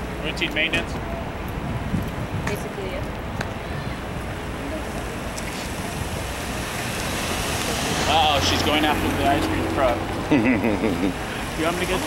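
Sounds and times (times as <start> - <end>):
vehicle tyres and engine passing: 0.0 - 12.0.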